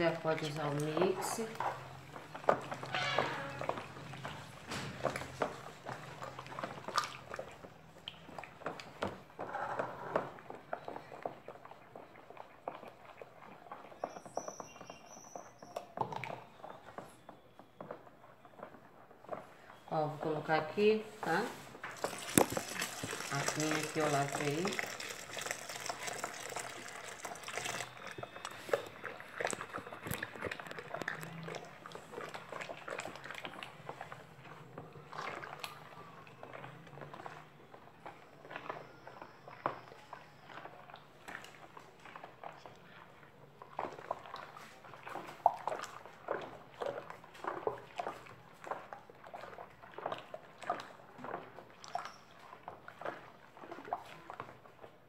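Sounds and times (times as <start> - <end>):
thick liquid pouring: 0.0 - 14.4, 21.8 - 54.9
liquid sloshing: 0.0 - 55.0.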